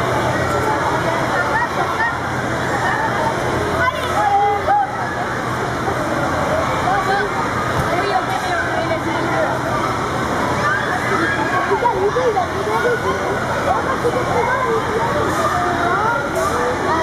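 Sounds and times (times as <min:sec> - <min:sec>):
children shouting and squealing: 0:10.5 - 0:16.7.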